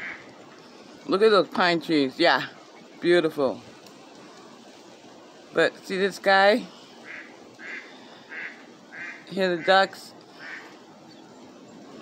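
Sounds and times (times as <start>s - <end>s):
ducks quacking faintly: 6.7s - 12.0s.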